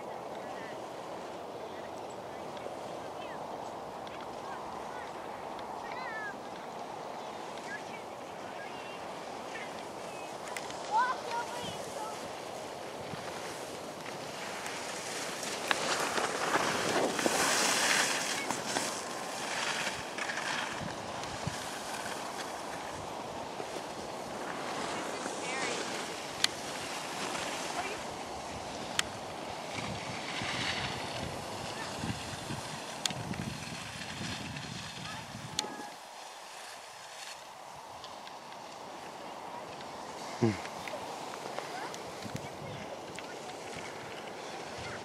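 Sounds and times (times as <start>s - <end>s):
wind on microphone: 0.0s - 36.1s, 39.4s - 45.0s
skis scraping over snow: 0.0s - 45.0s.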